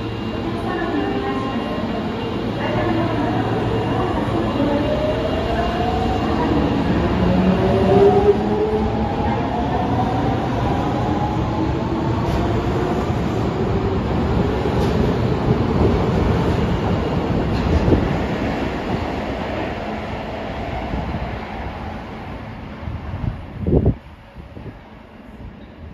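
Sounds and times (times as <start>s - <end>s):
low rumble of train cars: 0.0s - 25.9s.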